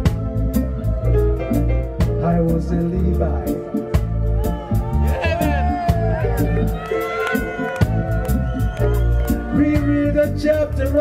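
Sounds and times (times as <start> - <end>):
man singing: 0.0 - 4.0, 9.4 - 11.0
bass line: 0.0 - 11.0
reggae band playing: 0.0 - 11.0
drum hits: 3.9 - 10.5.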